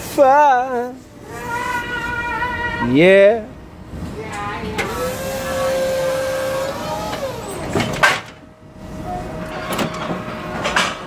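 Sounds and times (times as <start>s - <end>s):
hydraulic pump motor whining: 4.7s - 10.8s.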